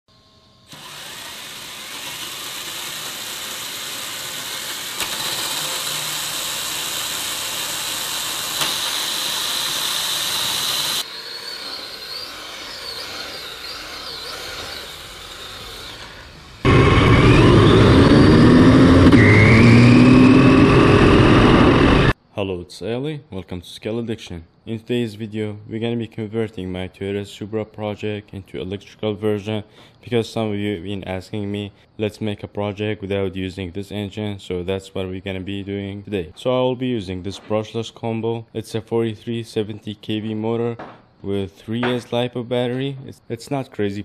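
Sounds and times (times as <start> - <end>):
model car engine revving: 0.7 - 22.2.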